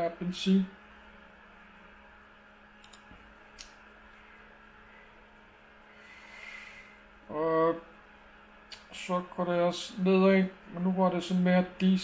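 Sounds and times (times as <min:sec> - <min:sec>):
steady low hum: 0:00.0 - 0:12.0
computer mouse clicks: 0:02.8 - 0:03.7.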